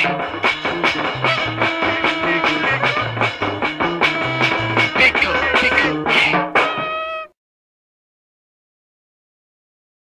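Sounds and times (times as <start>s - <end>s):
hardcore punk band playing: 0.0s - 7.3s.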